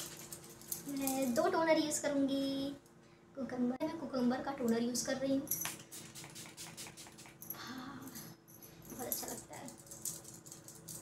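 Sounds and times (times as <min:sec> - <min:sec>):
pump spray bottle hissing: 0:05.8 - 0:07.4.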